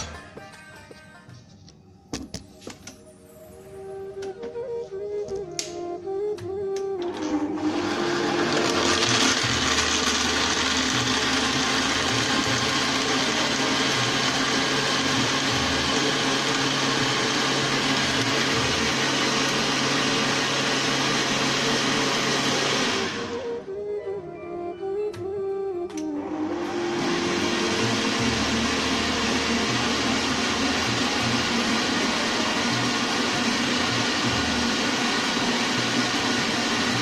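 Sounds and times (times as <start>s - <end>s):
electric blender running: 6.6s - 23.6s, 25.9s - 37.0s.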